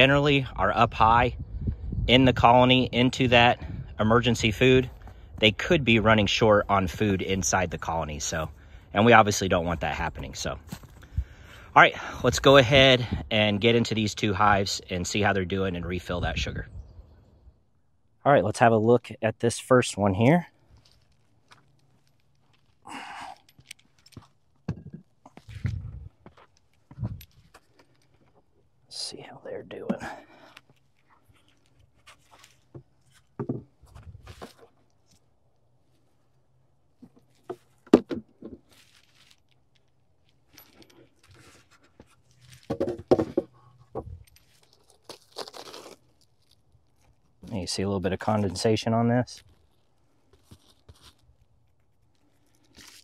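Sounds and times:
bubble foil crinkling: 38.6 - 40.6, 44.2 - 47.5, 49.4 - 53.0
wooden cover scraping and knocking: 42.6 - 44.1.

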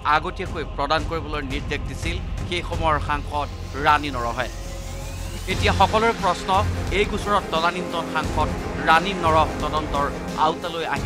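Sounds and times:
person speaking: 5.5 - 11.0.

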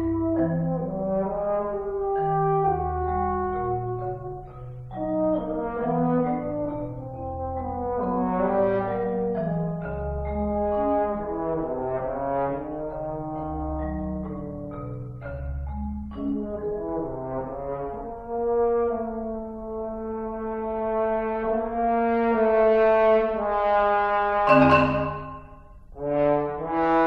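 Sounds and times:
marimba: 0.0 - 18.2, 24.5 - 26.0
french horn: 17.0 - 25.3, 25.9 - 27.0.

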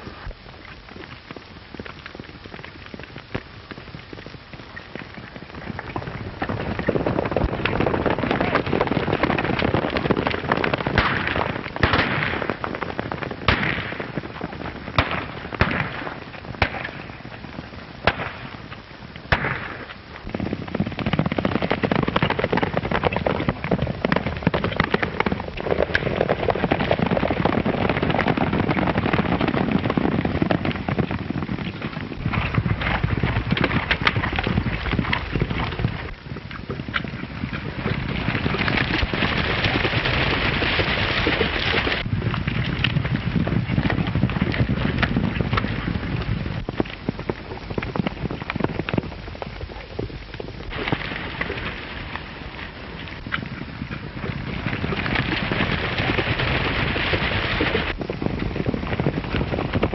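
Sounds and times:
film soundtrack crackle: 0.0 - 58.2
horses galloping: 0.0 - 59.9
sharp cracks: 6.0 - 17.4, 18.0 - 28.3.

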